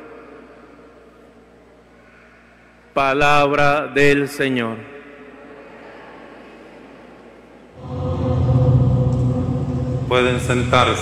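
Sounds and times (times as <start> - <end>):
sustained music chord: 7.8 - 11.0.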